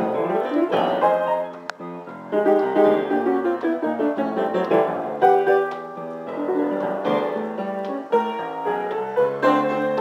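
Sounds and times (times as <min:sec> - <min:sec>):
jazz piano playing: 0:00.0 - 0:10.0.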